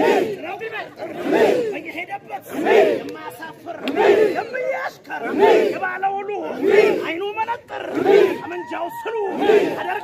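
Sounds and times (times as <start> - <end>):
men chanting in unison: 0.0 - 8.6, 9.2 - 10.0.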